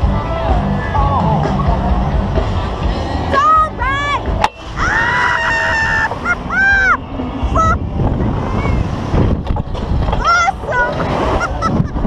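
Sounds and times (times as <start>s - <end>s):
wind noise on microphone: 4.3s - 12.0s
women shrieking: 4.7s - 7.0s.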